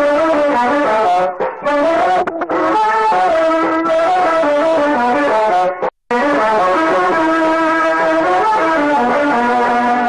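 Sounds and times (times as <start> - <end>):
instrumental music with held notes: 0.0 - 10.0.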